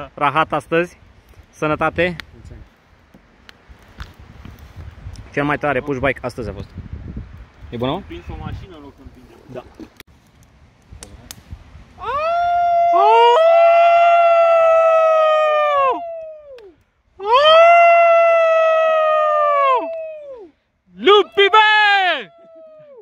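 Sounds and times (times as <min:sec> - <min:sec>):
men howling like wolves: 0:12.0 - 0:23.0.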